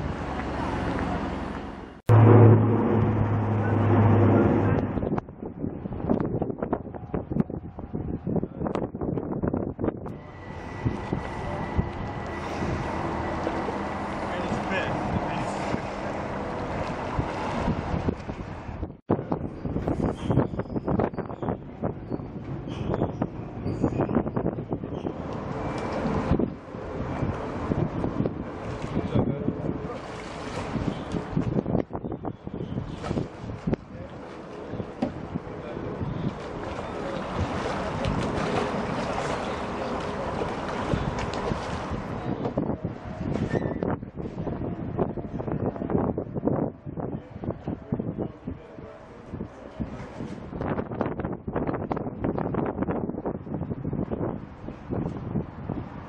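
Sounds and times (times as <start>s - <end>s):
wind rumbling on microphone: 0.0s - 56.0s
oars in water: 24.8s - 44.9s
faint voices: 33.8s - 41.4s, 47.0s - 50.2s.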